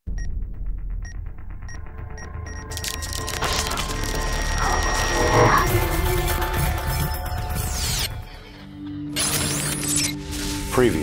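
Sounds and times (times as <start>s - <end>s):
low rumbling drone: 0.2s - 8.6s
high electronic beeps: 1.0s - 8.2s.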